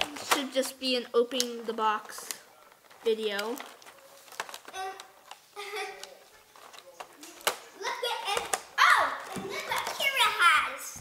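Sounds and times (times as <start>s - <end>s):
children talking and exclaiming: 0.0s - 2.4s, 4.6s - 6.2s, 7.5s - 11.0s
plastic packaging clicks: 0.0s - 10.2s.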